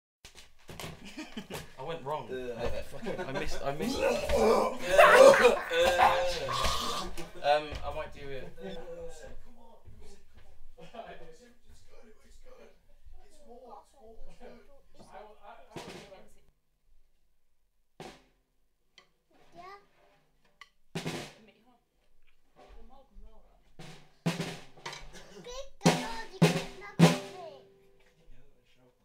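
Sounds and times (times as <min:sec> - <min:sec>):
quiet voices: 0:01.8 - 0:12.8
drum hits: 0:02.6 - 0:08.2, 0:15.7 - 0:16.2, 0:21.0 - 0:21.4, 0:23.8 - 0:27.9.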